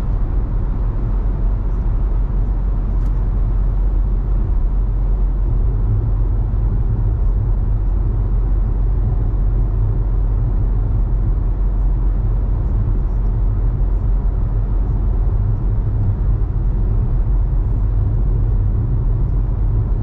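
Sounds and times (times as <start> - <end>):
car road rumble inside cabin: 0.0 - 20.0.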